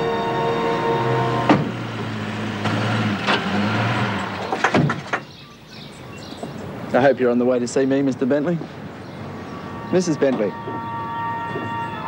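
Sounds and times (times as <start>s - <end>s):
car door opening and shutting: 1.4s - 1.8s.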